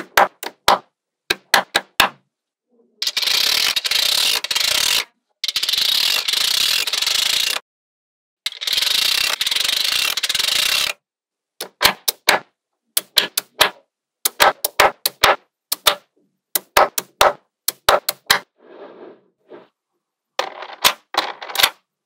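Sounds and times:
rapid ratchet-like rattling: 0:03.0 - 0:07.6, 0:08.5 - 0:11.0
magnetic balls clicking: 0:13.0 - 0:18.4.

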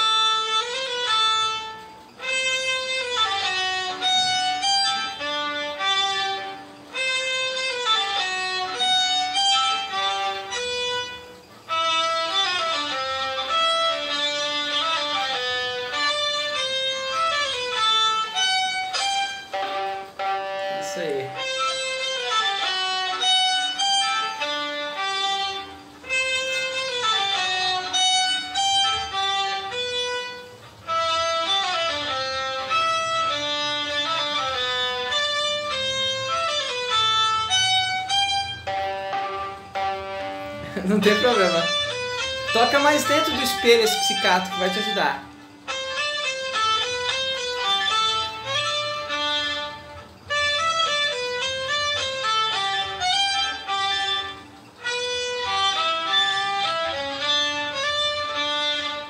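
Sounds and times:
solo violin with vibrato: 0:00.0 - 0:59.0.

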